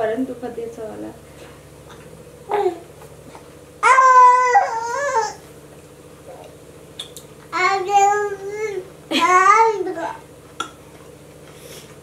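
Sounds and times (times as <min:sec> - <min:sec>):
baby wailing: 0:03.8 - 0:05.4.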